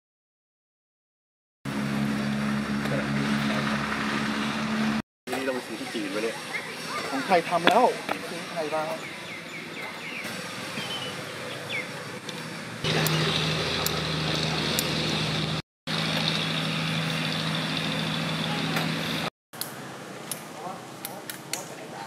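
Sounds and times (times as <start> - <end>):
mechanical hum with low drone: 1.7 - 22.0.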